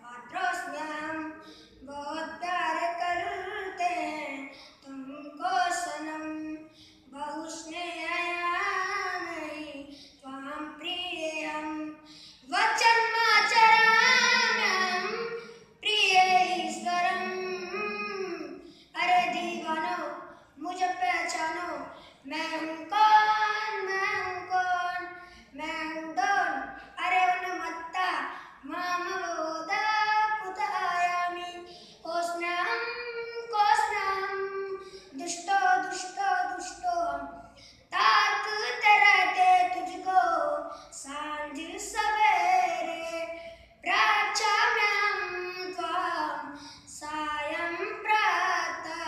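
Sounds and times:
boy singing unaccompanied: 0.0 - 49.0.

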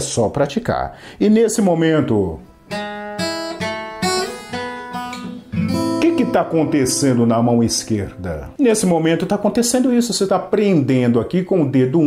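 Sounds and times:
fingerpicked acoustic guitar: 2.5 - 8.6.

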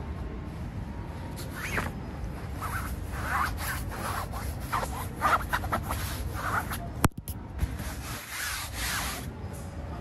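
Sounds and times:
tent fabric rustling: 1.5 - 6.8
tent zipper pulled: 2.6 - 5.7.

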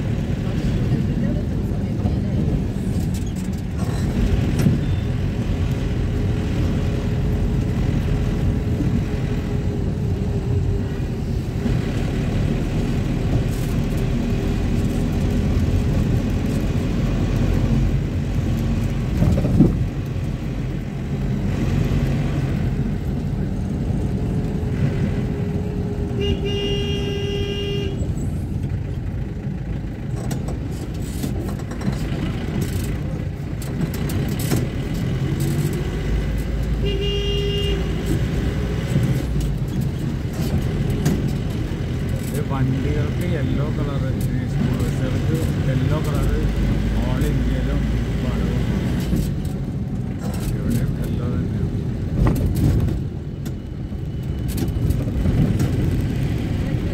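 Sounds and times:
vehicle engine and road rumble: 0.0 - 56.9
vehicle horn honking: 26.2 - 28.1, 36.8 - 38.0.

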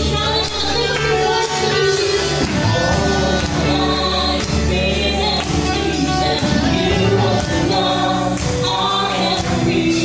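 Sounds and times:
live band playing worship song: 0.0 - 10.0
singers singing: 0.0 - 10.0.

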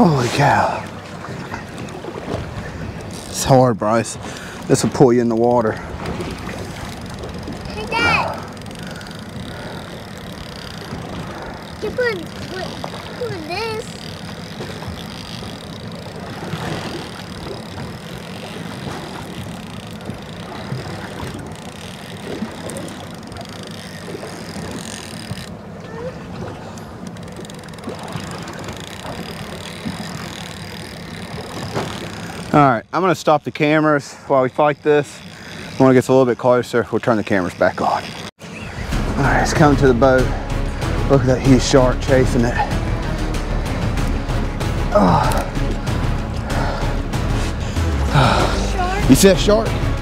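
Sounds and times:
boat hum and water wash: 0.0 - 50.0.

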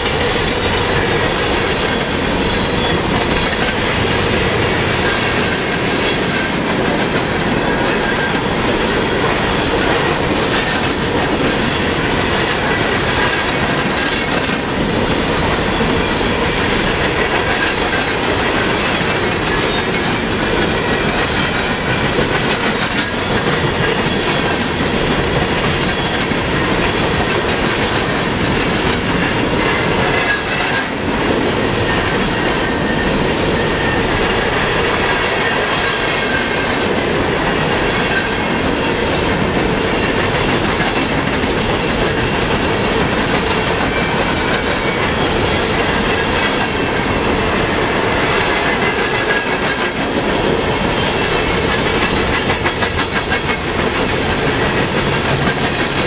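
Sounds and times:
steel train wheels on rails: 0.0 - 56.0.

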